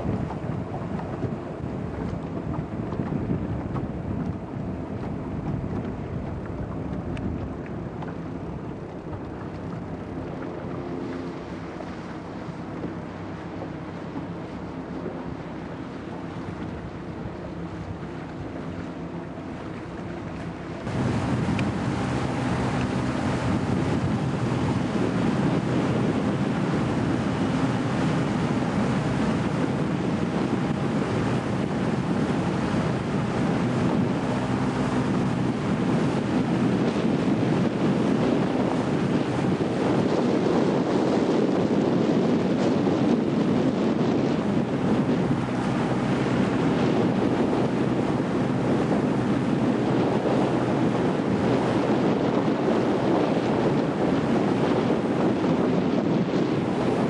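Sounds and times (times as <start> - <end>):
water rushing along boat hull: 0.0 - 57.0
wind on microphone: 0.0 - 57.0.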